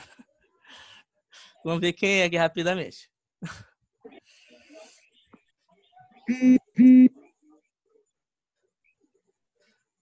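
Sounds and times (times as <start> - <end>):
faint scattered noise: 3.8 - 10.0.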